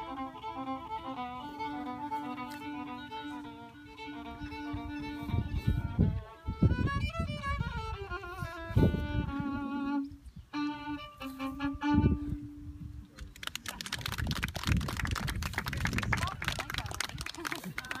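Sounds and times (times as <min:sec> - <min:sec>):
fiddle playing slow tune: 0:00.0 - 0:13.2.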